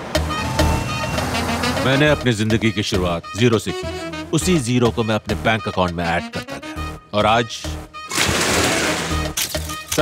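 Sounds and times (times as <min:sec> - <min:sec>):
car engine and road rumble: 0:00.0 - 0:01.9
background music: 0:00.0 - 0:10.0.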